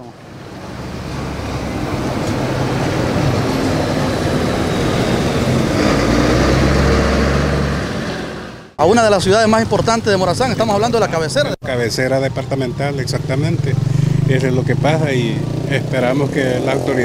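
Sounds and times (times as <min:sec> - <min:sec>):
truck diesel engine driving past: 0:00.0 - 0:08.8, 0:12.5 - 0:17.0
street traffic: 0:00.0 - 0:17.0.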